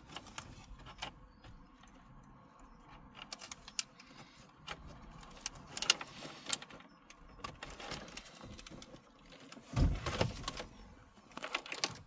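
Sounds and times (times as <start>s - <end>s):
plastic connectors clicking and rattling: 11.3s - 12.0s.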